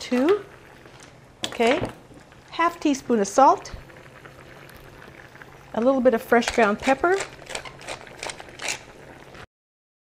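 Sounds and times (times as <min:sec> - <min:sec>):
pepper mill grinding: 0:06.3 - 0:09.2.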